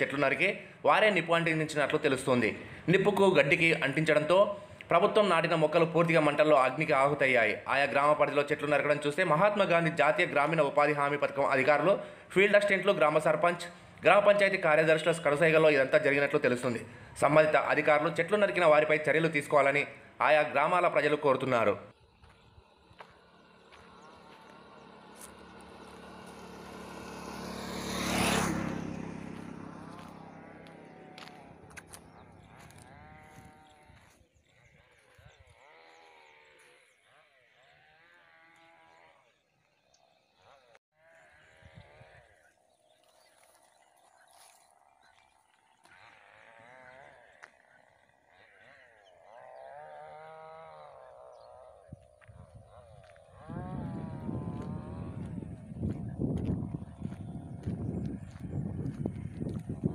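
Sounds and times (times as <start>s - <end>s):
motorcycle passing by: 22.2s - 39.4s, 40.0s - 59.9s
animals bleating: 23.0s - 26.5s, 29.3s - 39.4s, 40.4s - 43.6s, 45.8s - 55.6s.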